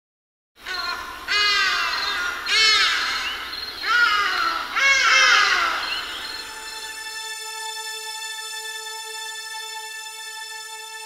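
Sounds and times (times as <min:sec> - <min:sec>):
large bird calling: 0:00.6 - 0:06.9.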